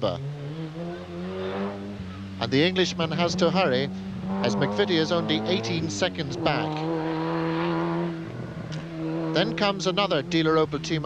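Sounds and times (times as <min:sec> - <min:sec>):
car engine accelerating hard: 0:00.0 - 0:11.0.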